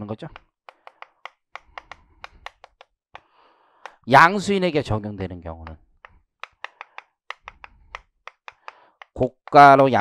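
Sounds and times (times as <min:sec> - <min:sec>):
chalk ticking on chalkboard: 0:00.3 - 0:04.1, 0:05.6 - 0:10.0.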